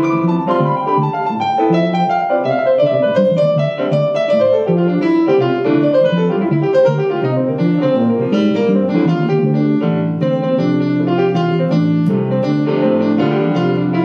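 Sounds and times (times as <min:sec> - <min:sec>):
jazz piano: 0:00.0 - 0:14.0
electric bass guitar: 0:00.1 - 0:14.0.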